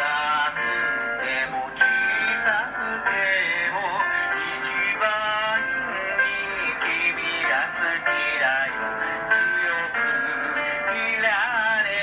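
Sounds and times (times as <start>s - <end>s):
instrumental backing track: 0.0s - 12.0s
man singing with vibrato: 0.0s - 12.0s.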